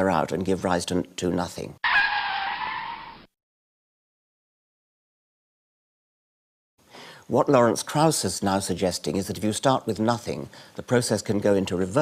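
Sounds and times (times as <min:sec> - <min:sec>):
screech with high squeal: 0:01.8 - 0:03.3.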